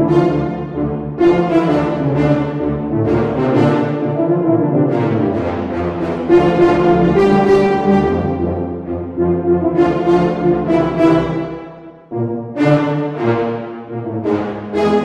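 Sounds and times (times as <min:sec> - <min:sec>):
staccato french horns and tuba: 0:00.0 - 0:15.0.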